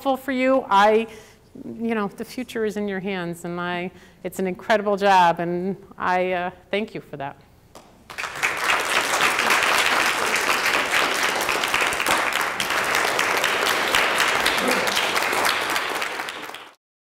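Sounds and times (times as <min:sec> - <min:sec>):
audience applauding: 0:08.1 - 0:16.8.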